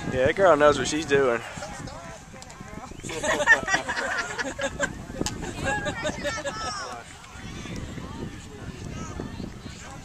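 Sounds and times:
spectators chattering: 0.0s - 10.0s.

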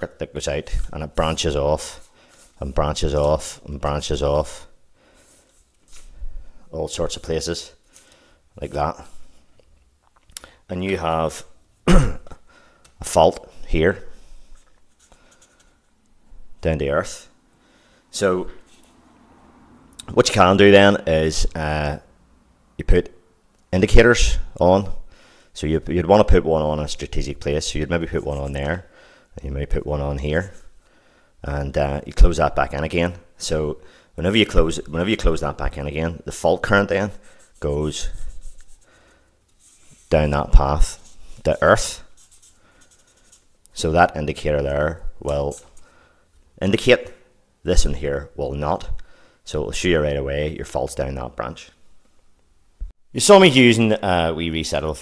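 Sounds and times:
pen scratching on paper: 37.1s - 38.9s, 39.5s - 43.5s.

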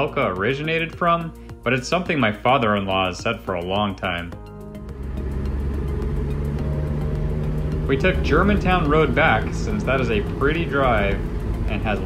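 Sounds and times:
car engine cruising: 4.5s - 12.0s
road noise inside car: 4.9s - 12.0s.

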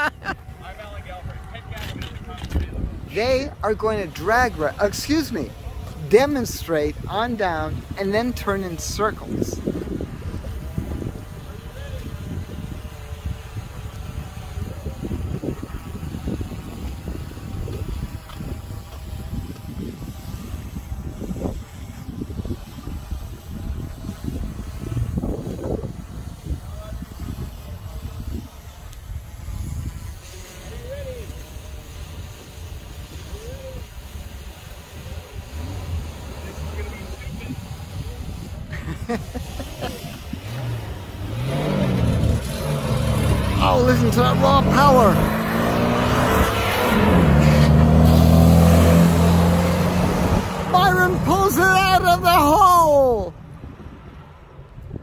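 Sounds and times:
car engines rising in pitch: 39.2s - 52.3s
voices of onlookers: 43.3s - 45.8s.

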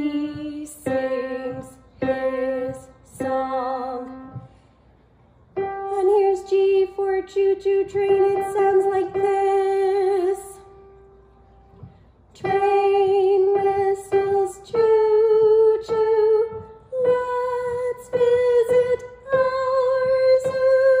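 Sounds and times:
piano notes: 0.0s - 21.0s.

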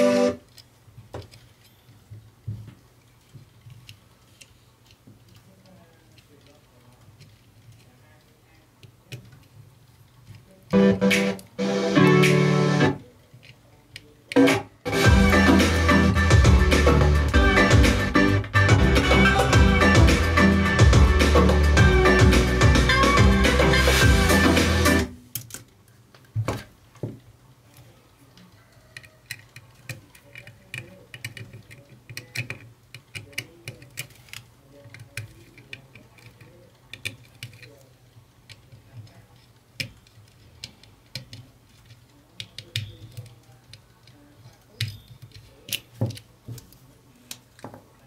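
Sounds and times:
clicks and taps of handled wires: 0.5s - 10.7s, 25.3s - 48.0s
music from speakers: 10.8s - 13.0s, 14.4s - 25.1s.

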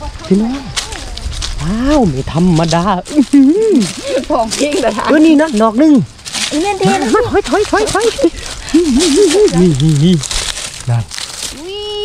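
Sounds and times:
dry leaves crinkling: 0.0s - 12.0s.

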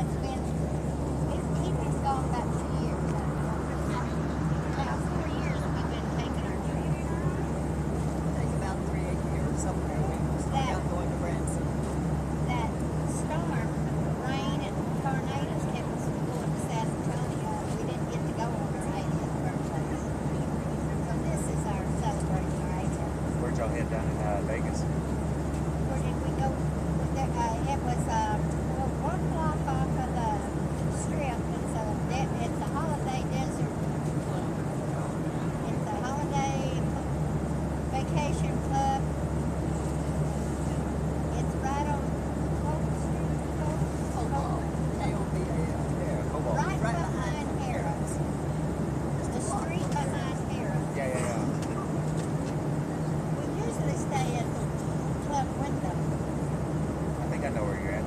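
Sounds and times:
airliner cabin drone: 0.0s - 58.0s
muffled passenger voices: 0.0s - 58.0s.

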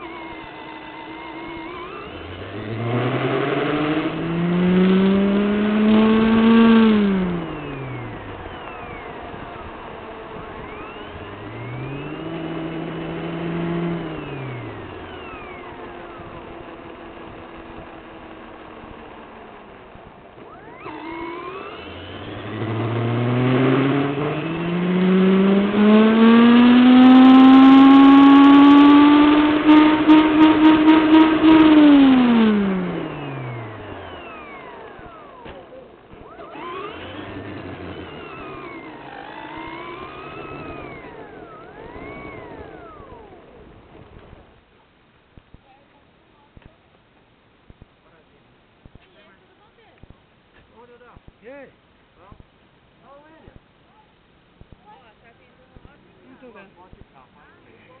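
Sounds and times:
model car motor whining: 0.0s - 44.6s.

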